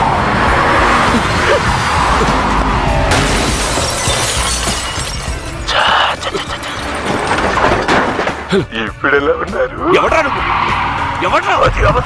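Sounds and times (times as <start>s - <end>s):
crunching metal: 2.2s - 8.6s
shattering glass: 3.1s - 8.5s.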